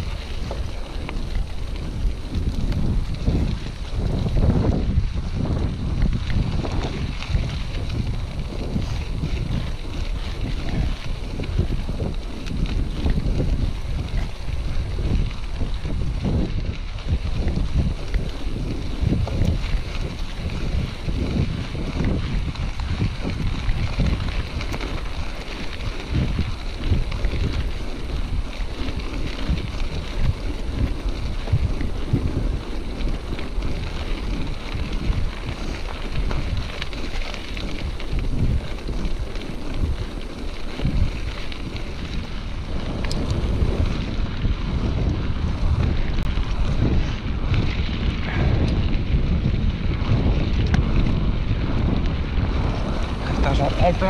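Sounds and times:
bike knocking and rattling: 0.0s - 54.0s
tyres rumbling on gravel: 0.0s - 54.0s
wind on microphone: 0.0s - 54.0s.

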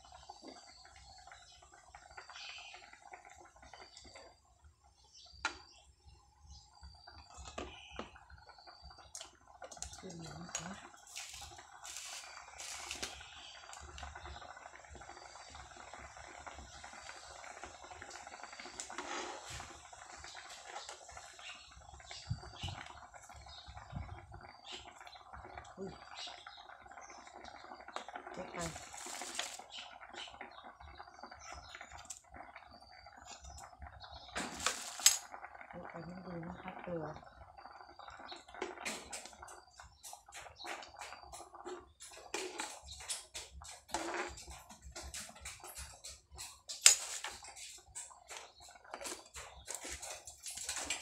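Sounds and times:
spoon scraping metal pot: 43.9s - 44.6s.

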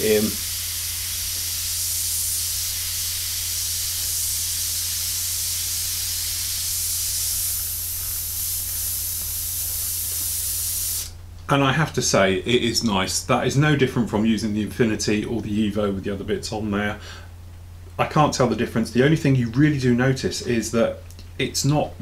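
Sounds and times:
airbrush spraying hiss: 0.0s - 11.2s.

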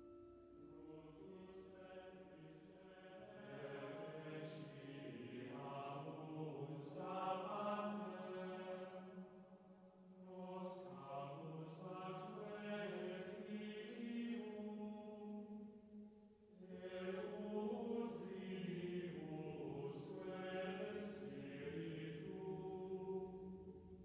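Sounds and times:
slow chant-like singing: 0.6s - 24.0s.

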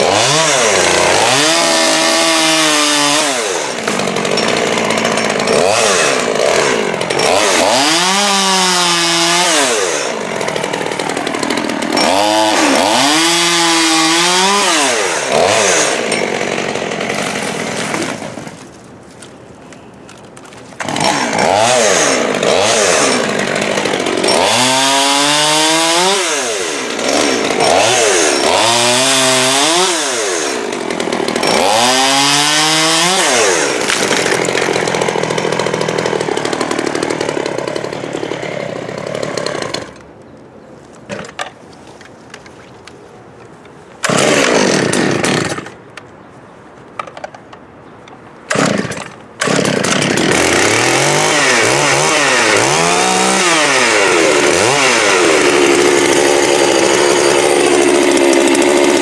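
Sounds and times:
chainsaw revving and cutting wood: 0.0s - 19.2s, 20.8s - 40.0s, 44.0s - 45.7s, 48.5s - 59.0s.

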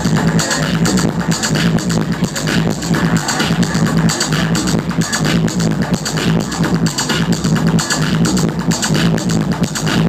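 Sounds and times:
techno music over club sound system: 0.0s - 10.0s.

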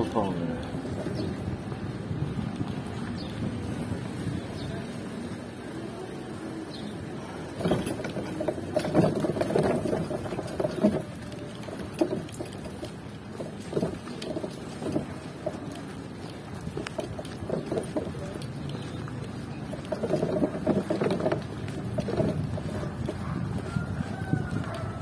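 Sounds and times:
pedicab rattling and knocking: 0.0s - 25.0s.

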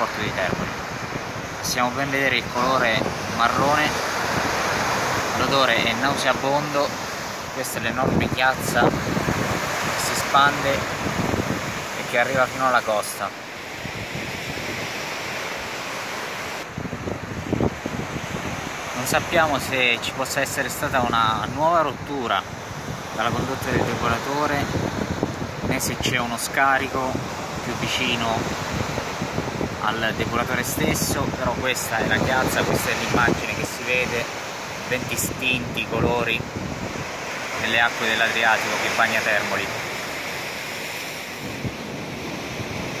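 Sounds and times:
wind buffeting microphone: 0.0s - 12.6s, 13.6s - 38.0s, 39.6s - 43.0s
surf breaking on rocks: 0.0s - 21.8s, 22.7s - 43.0s.

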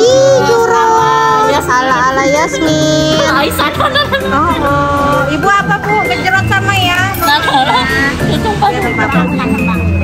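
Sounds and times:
women chatting: 0.3s - 9.9s.

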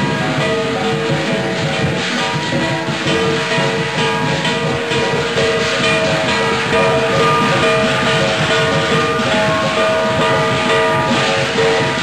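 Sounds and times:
big drum: 0.0s - 12.0s
clashing cymbals: 0.0s - 12.0s
gongs ringing: 0.0s - 12.0s.

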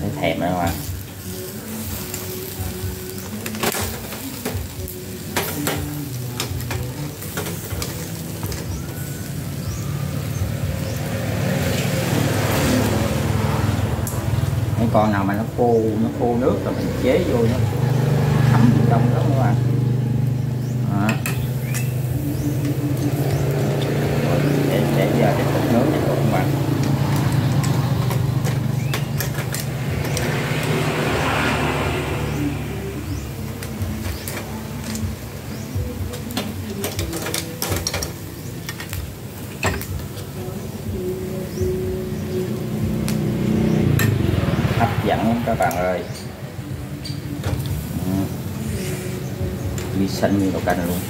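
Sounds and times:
sauce sizzling: 0.0s - 51.0s
metal tongs clicking on grill: 0.7s - 9.1s, 14.0s - 14.3s, 21.0s - 23.9s, 26.8s - 30.8s, 33.6s - 40.5s.

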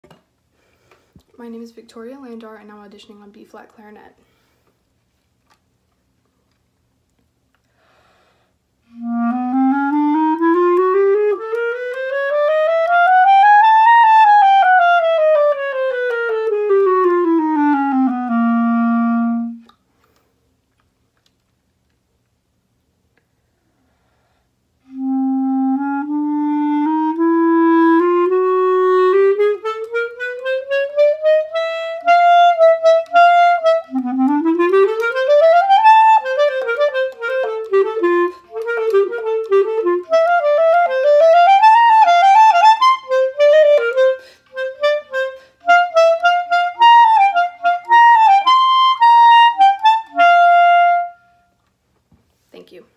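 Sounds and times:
solo clarinet: 8.8s - 19.8s, 24.8s - 51.6s.

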